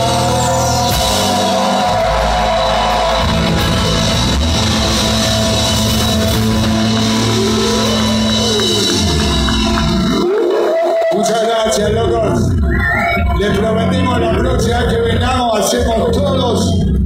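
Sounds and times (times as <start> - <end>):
drum kit: 0.0 - 10.8
distorted electric guitars: 0.0 - 17.0.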